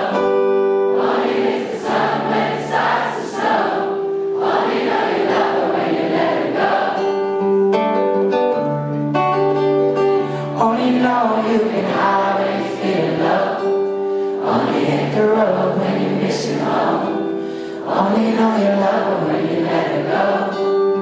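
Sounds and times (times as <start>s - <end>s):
crowd singing together: 0.0s - 8.3s, 10.6s - 21.0s
strummed acoustic guitar: 0.0s - 21.0s.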